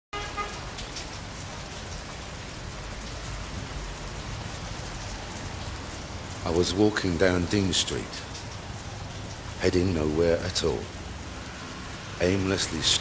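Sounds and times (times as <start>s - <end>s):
rain falling: 0.2s - 13.0s.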